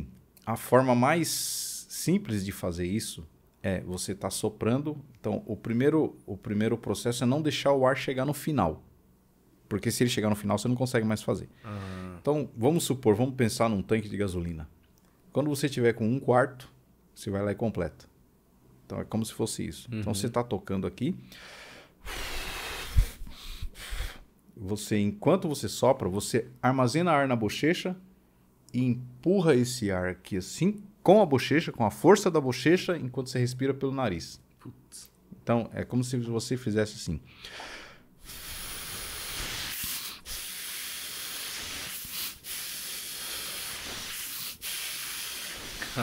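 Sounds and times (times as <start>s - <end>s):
short breaths: 11.6s - 12.2s, 21.2s - 24.3s, 37.3s - 46.0s
man blowing air through lips: 22.0s - 24.3s, 37.4s - 46.0s
air puff bumping microphone: 22.1s - 24.2s, 38.2s - 46.0s.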